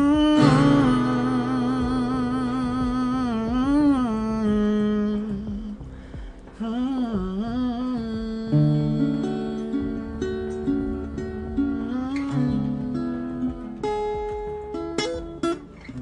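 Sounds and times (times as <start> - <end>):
man singing wordless notes: 0.0 - 13.7
soft acoustic backing: 0.0 - 16.0.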